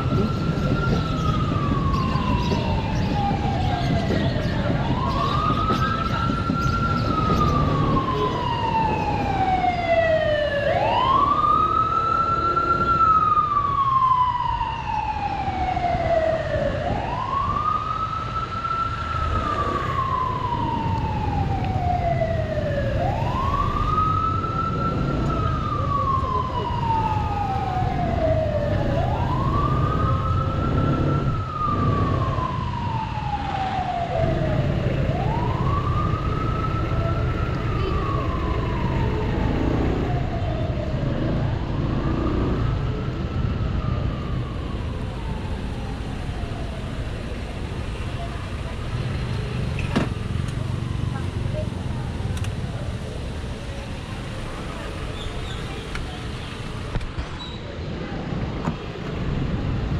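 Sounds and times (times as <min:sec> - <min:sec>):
wailing siren: 0:00.0 - 0:55.8.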